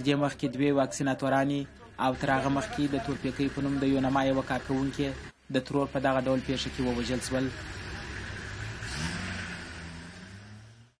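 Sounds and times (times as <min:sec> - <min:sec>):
vehicle engine running: 0:01.5 - 0:10.9.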